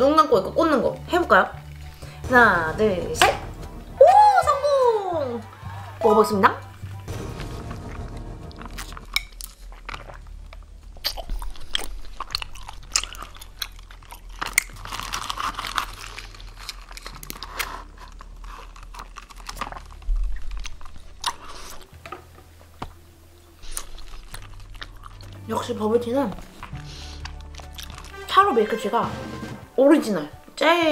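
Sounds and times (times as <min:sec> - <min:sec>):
chewing tapioca pearls: 0:08.4 - 0:28.2
wet mouth clicks: 0:11.0 - 0:14.7.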